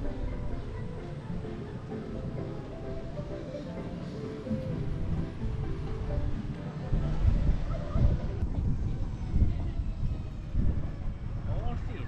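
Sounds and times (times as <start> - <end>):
vehicle running noise: 0.0 - 9.1
wind buffeting microphone: 0.0 - 12.0.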